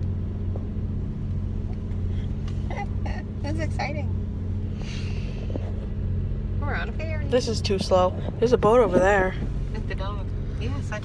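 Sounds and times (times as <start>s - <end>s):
low engine drone: 0.0s - 11.0s
brief rustling hiss: 4.7s - 5.8s.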